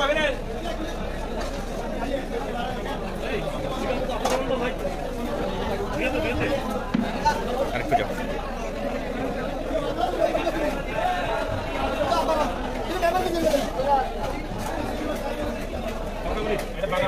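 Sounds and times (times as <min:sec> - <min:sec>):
chatter of voices: 0:00.0 - 0:17.0.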